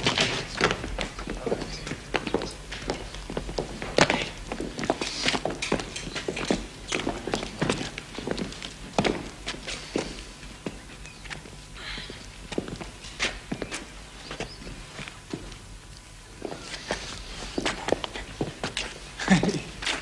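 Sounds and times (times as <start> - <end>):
footsteps and shuffles: 0.0 - 20.0.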